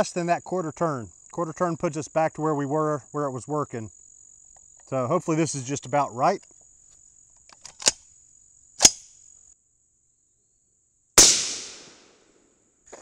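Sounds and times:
sharp clicks: 7.5 - 8.0
rifle shot: 11.2 - 12.4.

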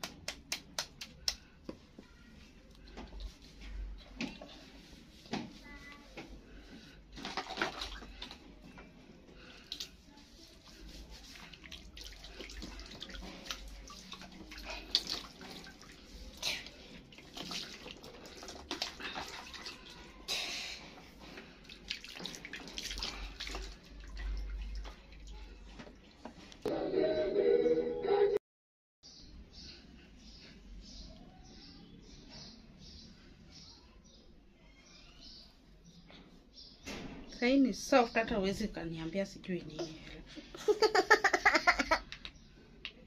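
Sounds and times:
water splashing in plastic basin: 7.1 - 8.8, 10.7 - 20.3, 20.9 - 26.2.

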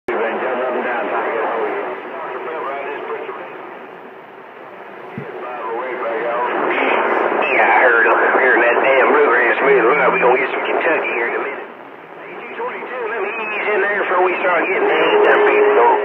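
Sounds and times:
garbled radio voices: 5.1 - 16.0.

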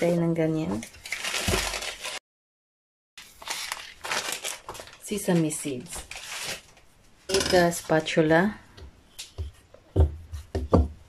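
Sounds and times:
plastic packet crinkling: 0.8 - 2.2, 3.2 - 6.9.

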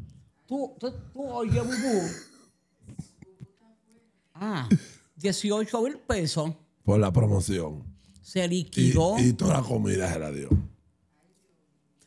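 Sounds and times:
man clearing throat: 1.5 - 2.5
man speaking: 8.6 - 10.7.

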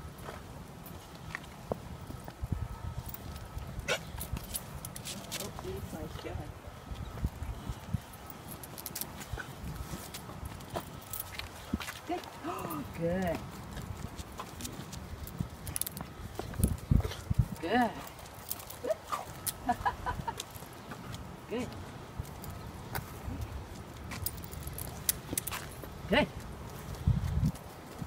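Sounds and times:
clicks on concrete sidewalk: 0.0 - 28.0
footsteps on concrete: 3.4 - 6.3, 6.9 - 19.6
woman speaking: 5.2 - 6.6, 12.0 - 13.5, 17.5 - 18.2, 21.5 - 21.8, 26.1 - 26.4.

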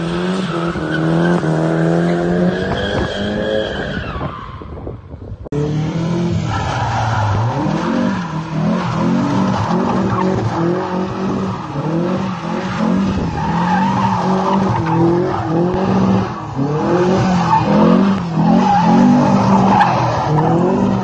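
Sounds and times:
car engine revving: 5.5 - 21.0.

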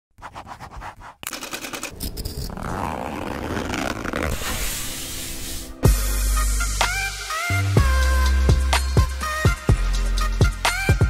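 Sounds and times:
pen scratching on paper: 0.2 - 2.5
music: 3.8 - 11.0.

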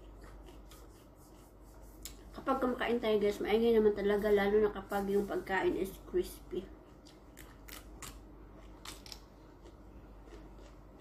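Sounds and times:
crunching raw vegetable: 7.0 - 11.0.

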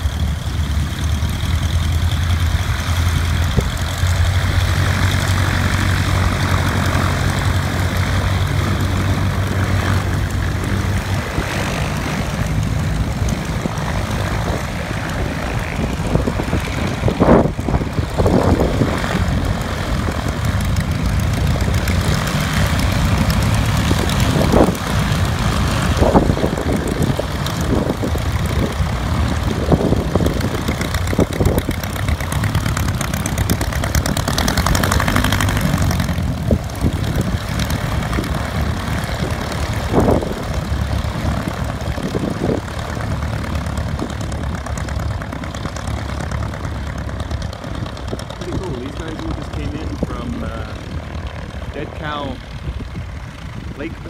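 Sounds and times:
propeller aircraft engine drone: 0.0 - 54.0.

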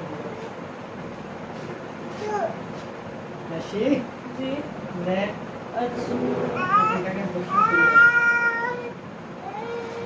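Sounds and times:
baby whining cries: 6.6 - 10.0.

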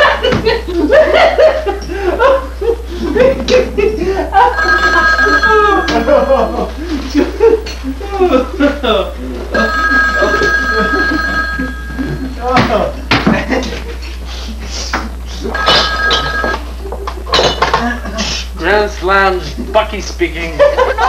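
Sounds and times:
people laughing: 0.0 - 15.8, 16.4 - 18.6, 19.4 - 21.0
telephone ringing: 4.4 - 12.9, 15.5 - 16.7.

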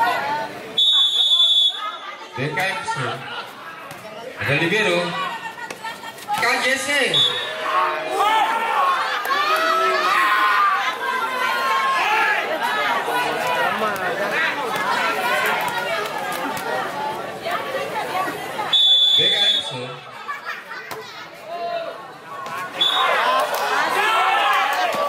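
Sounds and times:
crowd chatter: 0.0 - 25.0
referee's whistle blast: 0.8 - 1.9, 7.1 - 7.6, 18.7 - 19.8, 22.8 - 23.2.

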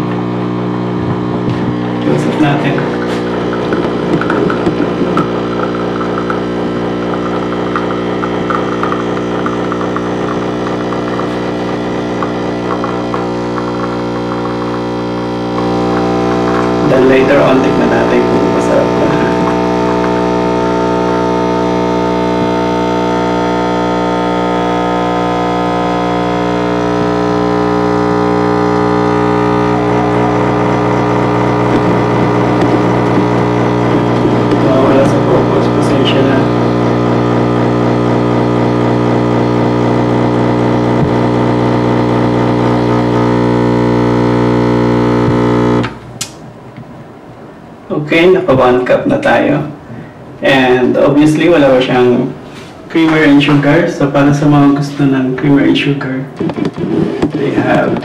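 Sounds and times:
coffee machine pump humming: 0.0 - 47.2.

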